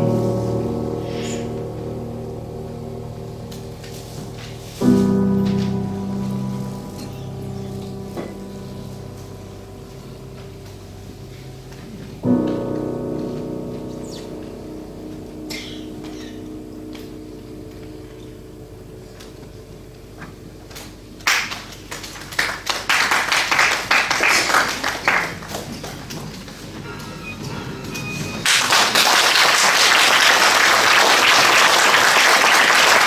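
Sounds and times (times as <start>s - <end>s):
violin and piano music: 0.0s - 18.4s
low room hum: 0.0s - 33.0s.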